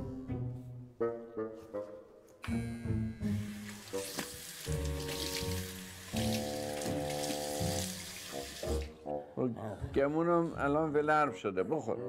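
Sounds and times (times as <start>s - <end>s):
background music notes: 0.0s - 12.0s
tap running into sink: 3.7s - 8.9s.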